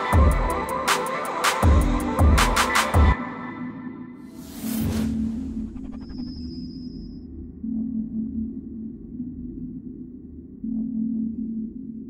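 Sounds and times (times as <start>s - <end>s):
deep synth drone: 4.4s - 12.0s.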